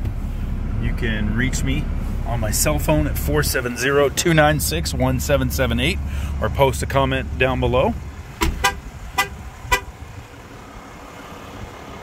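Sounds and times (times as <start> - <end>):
low outdoor background: 0.0 - 12.0
vehicle horn chirps: 8.4 - 9.9.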